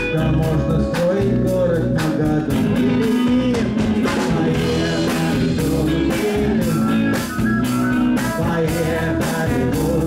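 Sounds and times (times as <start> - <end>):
lead guitar bending pitch: 0.0 - 9.4
live band playing: 0.0 - 10.0.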